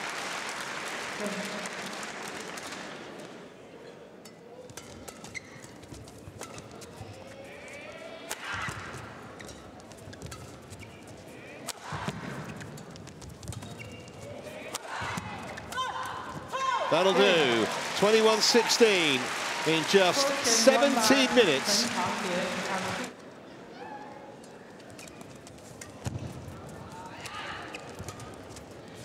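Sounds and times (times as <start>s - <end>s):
shoes squeaking on court: 4.7s - 7.8s, 8.6s - 11.4s, 12.2s - 14.4s, 24.8s - 26.1s, 27.6s - 28.7s.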